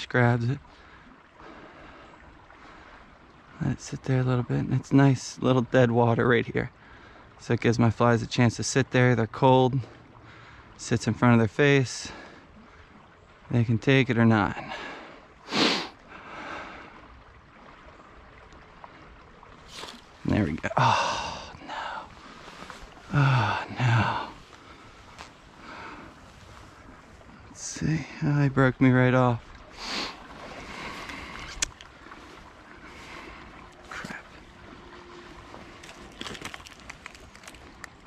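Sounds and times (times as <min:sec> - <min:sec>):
creek water running: 0:00.0 - 0:38.0
faint outdoor background: 0:00.0 - 0:38.0.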